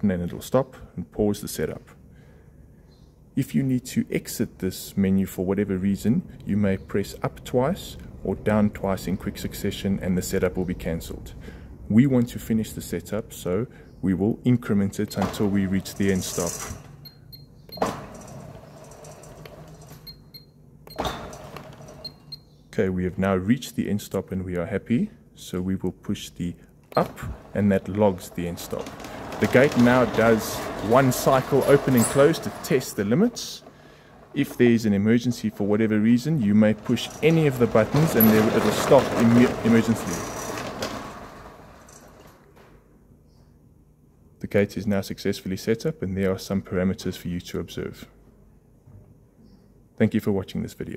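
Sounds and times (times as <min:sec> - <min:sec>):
gate motor humming: 0:15.0 - 0:22.4, 0:26.8 - 0:42.7.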